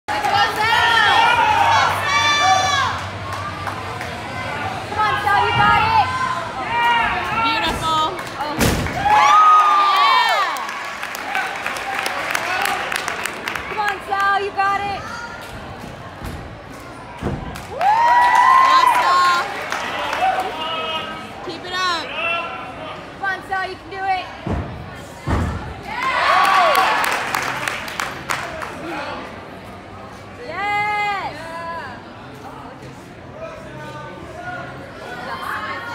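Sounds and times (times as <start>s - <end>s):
people clapping and cheering: 0.1s - 4.4s, 8.1s - 14.6s, 17.4s - 21.2s, 25.9s - 29.0s.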